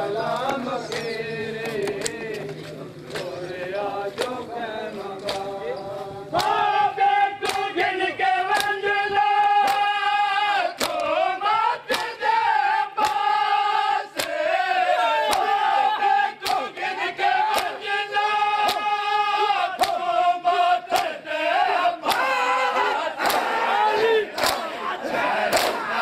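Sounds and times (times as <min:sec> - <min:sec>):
men chanting in long held notes: 0:00.0 - 0:26.0
hands slapping bare chests: 0:04.2 - 0:04.4, 0:05.2 - 0:05.6, 0:06.3 - 0:06.6, 0:07.4 - 0:07.8, 0:08.5 - 0:10.0, 0:10.7 - 0:11.2, 0:11.8 - 0:12.2, 0:13.0 - 0:13.4, 0:14.1 - 0:14.4, 0:15.2 - 0:15.6, 0:16.4 - 0:16.9, 0:17.5 - 0:17.8, 0:18.6 - 0:19.0, 0:19.8 - 0:20.1, 0:20.9 - 0:21.2, 0:22.0 - 0:22.4, 0:23.2 - 0:23.6, 0:24.3 - 0:24.8, 0:25.5 - 0:25.9.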